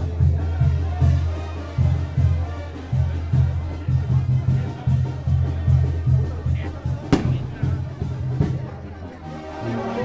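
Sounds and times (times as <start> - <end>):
brass band playing: 0.4 - 10.0
deep bass beat: 5.2 - 8.8.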